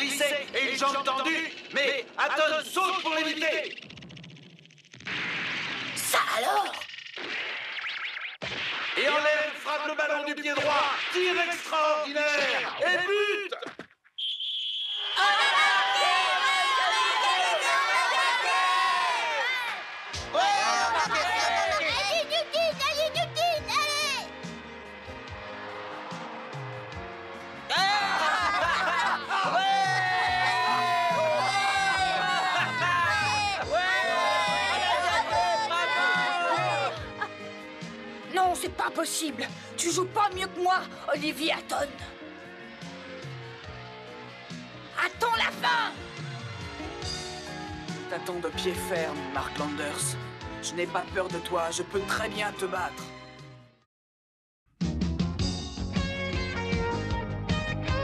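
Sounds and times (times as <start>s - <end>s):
background music: 0.0s - 3.8s, 15.2s - 53.8s, 54.8s - 58.0s
young voices cheering and shouting: 15.2s - 24.3s, 27.7s - 37.3s.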